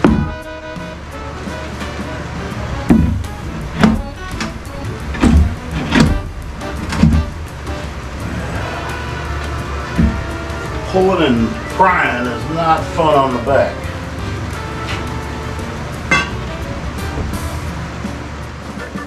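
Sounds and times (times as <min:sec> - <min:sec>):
pry bar knocking on plywood: 0:00.0 - 0:00.4
background music: 0:00.0 - 0:19.0.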